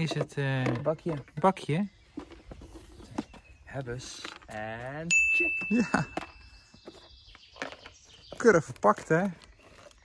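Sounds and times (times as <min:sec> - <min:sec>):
high chime tone: 0:05.1 - 0:06.5.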